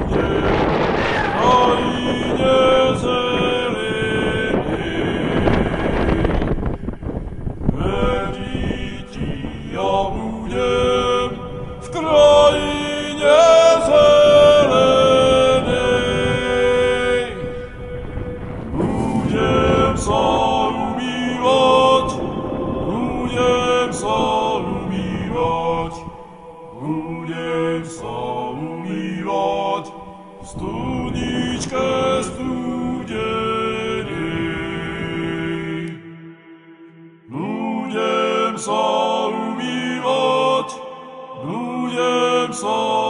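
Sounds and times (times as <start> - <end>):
wind buffeting microphone: 0.0 - 36.0
person singing chant-like song: 0.0 - 43.0.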